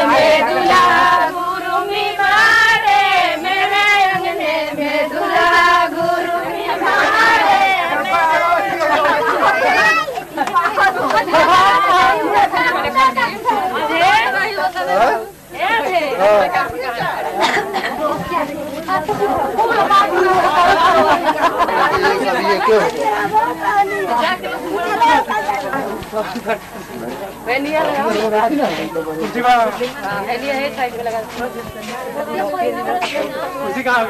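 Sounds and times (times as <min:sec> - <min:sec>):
crowd chatter: 0:00.0 - 0:34.0.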